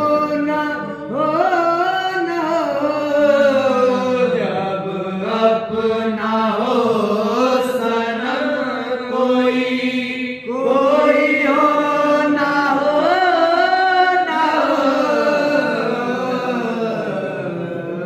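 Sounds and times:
men singing into microphones: 0.0 - 18.0.

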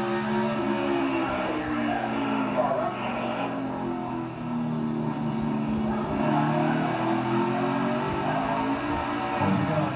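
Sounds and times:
race car engine at speed: 0.0 - 9.9.

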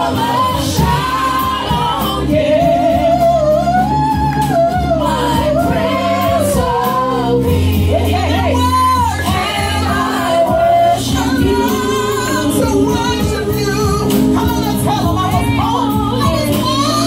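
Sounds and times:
women singing gospel: 0.0 - 17.0.

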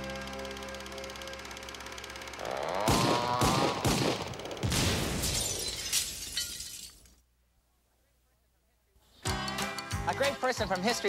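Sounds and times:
theme music held chord: 0.0 - 2.4.

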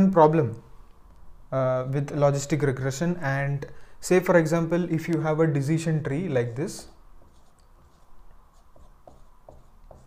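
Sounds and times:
marker pen scratching on whiteboard: 6.7 - 10.0.

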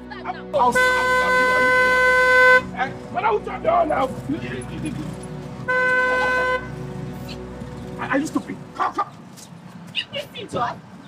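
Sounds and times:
car horn: 0.6 - 2.8, 5.6 - 6.8.

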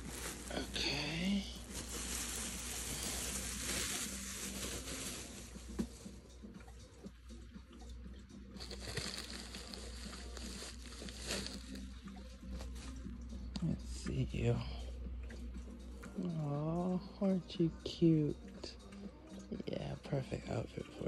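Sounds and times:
plastic bag rustling and crinkling: 0.0 - 6.1, 8.6 - 11.9.

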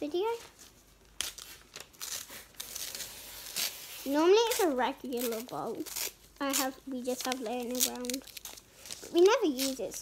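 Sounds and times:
paper rustling and tearing: 0.2 - 10.0.

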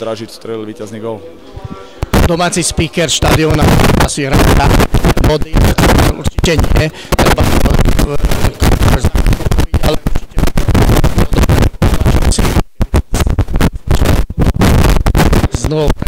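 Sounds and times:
man talking into distorted microphone: 0.0 - 16.0.

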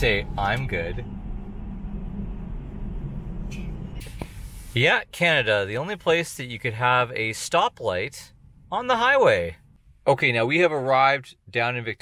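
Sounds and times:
road and tyre rumble: 0.0 - 7.2.

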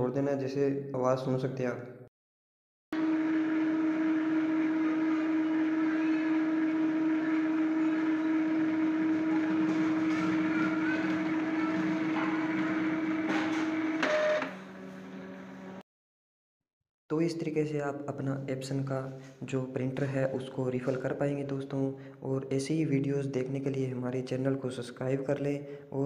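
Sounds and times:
printer motor whirring: 3.0 - 15.8.

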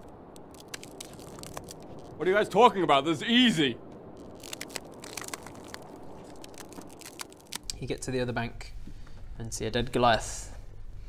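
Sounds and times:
wind hissing: 0.0 - 9.4.

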